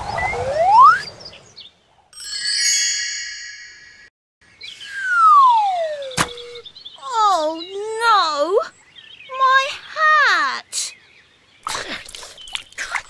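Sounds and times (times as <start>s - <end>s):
long falling whistle: 0.0s - 1.1s, 4.8s - 6.6s
tinkling chime shimmer: 2.2s - 4.1s.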